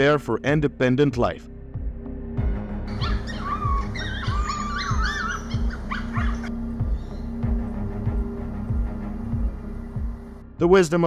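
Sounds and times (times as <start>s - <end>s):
background music with low beat: 0.0s - 11.0s
coyote pups whining: 2.9s - 7.6s.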